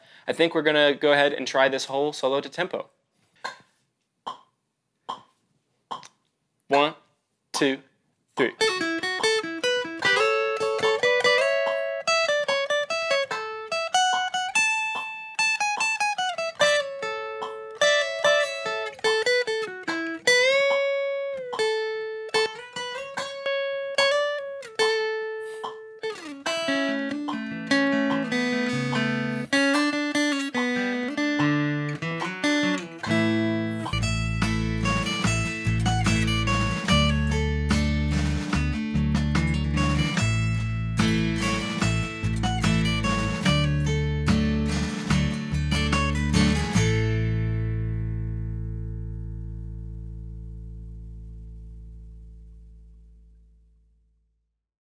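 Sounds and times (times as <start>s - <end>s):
acoustic guitar solo: 8.4s - 52.8s
deep bass line: 33.2s - 53.8s.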